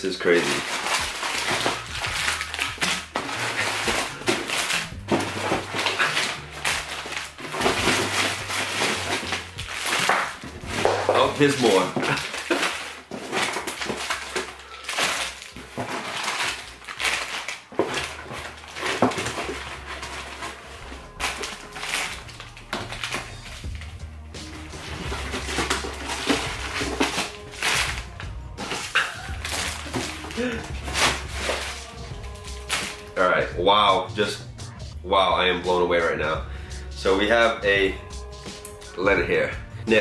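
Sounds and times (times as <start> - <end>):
plastic wrappers crinkling: 0.0 - 33.3
background music: 0.0 - 40.0
packets knocking on cardboard: 0.3 - 33.1.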